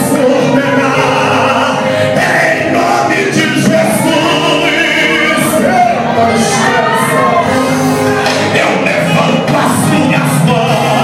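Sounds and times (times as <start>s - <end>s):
man singing through loudspeakers: 0.0s - 11.0s.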